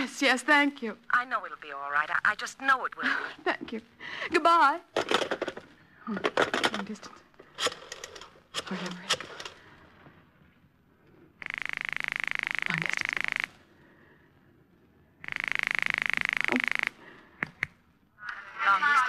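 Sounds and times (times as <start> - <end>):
telephone ringing signal: 11.4 - 13.5, 15.2 - 17.1.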